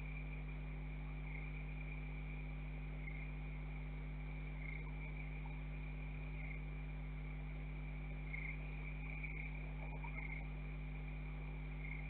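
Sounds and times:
crickets trilling: 0:00.0 - 0:12.0
steady low hum: 0:00.0 - 0:12.0.

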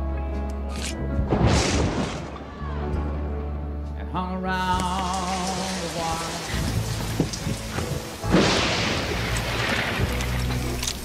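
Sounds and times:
thunderclap: 0:01.3 - 0:02.7, 0:07.1 - 0:10.6
country song: 0:02.4 - 0:10.9
rain: 0:04.8 - 0:11.0.

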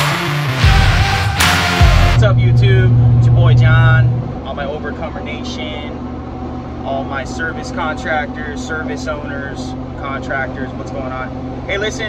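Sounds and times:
loud low steady hum: 0:00.0 - 0:12.0
man talking: 0:02.2 - 0:06.0, 0:06.8 - 0:12.0.

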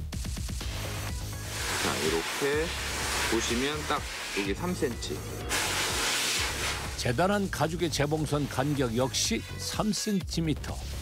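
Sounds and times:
steady hissing: 0:00.6 - 0:07.1.

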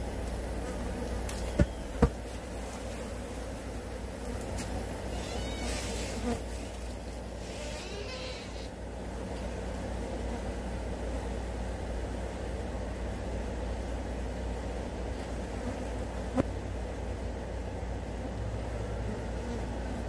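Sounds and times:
flies buzzing: 0:00.0 - 0:20.0.

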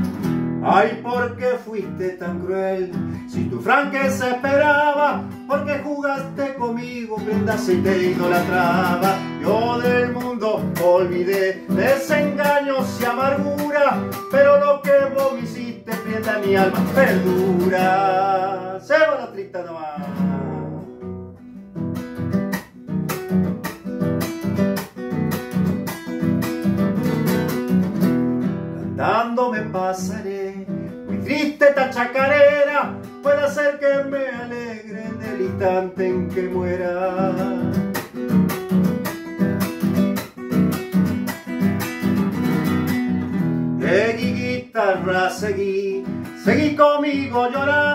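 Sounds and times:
classical guitar strumming: 0:00.0 - 0:47.9.

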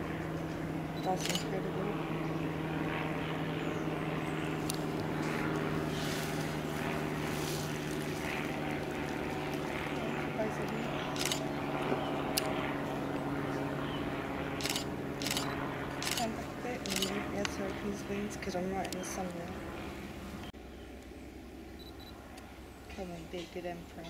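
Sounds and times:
distant engine drone: 0:00.0 - 0:24.0
camera shutter clicks: 0:01.2 - 0:01.5, 0:11.2 - 0:11.4, 0:14.6 - 0:17.2.

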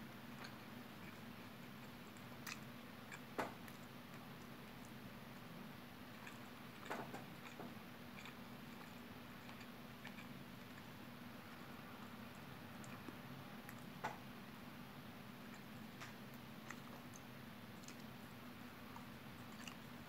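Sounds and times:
person chewing: 0:00.3 - 0:14.0, 0:15.3 - 0:20.0.

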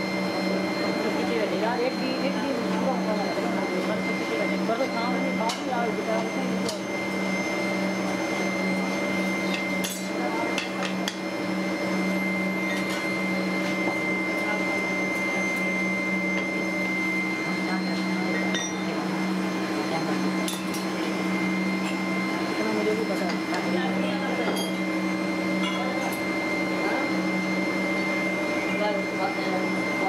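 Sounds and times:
foundry machinery drone: 0:00.0 - 0:30.0.

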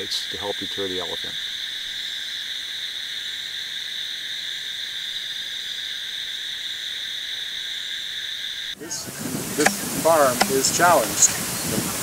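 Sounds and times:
night insects buzzing: 0:00.0 - 0:12.0.

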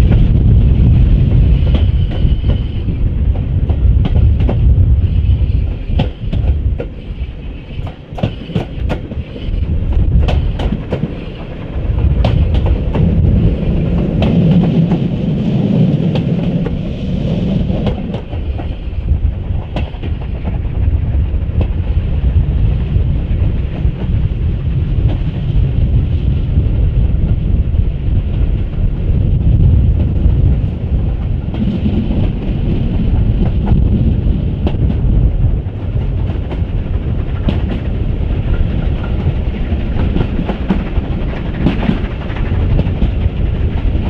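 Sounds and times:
train rumbling: 0:00.0 - 0:44.0
wheels clicking over rail joints: 0:31.1 - 0:44.0.

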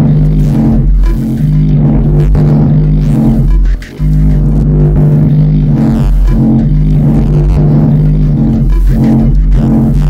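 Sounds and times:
deep bass drone: 0:00.0 - 0:10.0
layered steady synth tones: 0:00.0 - 0:10.0.

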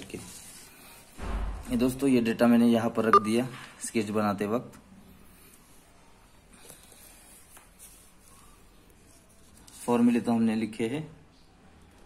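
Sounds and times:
man speaking: 0:02.8 - 0:04.5
paper rustling on desk: 0:06.5 - 0:10.2.

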